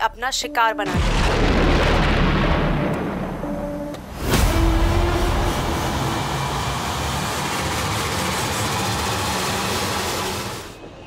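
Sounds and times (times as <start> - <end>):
boom: 0.9 - 3.5
loud rushing rumble: 0.9 - 11.0.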